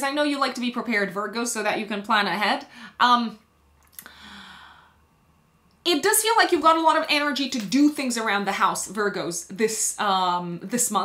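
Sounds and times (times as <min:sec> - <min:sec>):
woman breathing: 0:02.7 - 0:03.0, 0:04.0 - 0:05.1.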